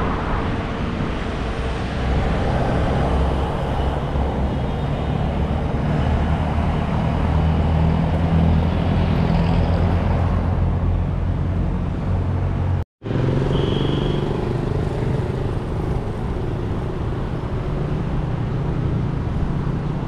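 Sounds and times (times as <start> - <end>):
vehicle engines rumbling: 0.0 - 20.0.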